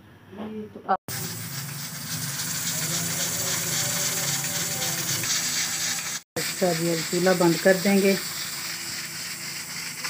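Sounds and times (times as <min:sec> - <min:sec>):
pressure cooker hissing: 0:01.1 - 0:10.0.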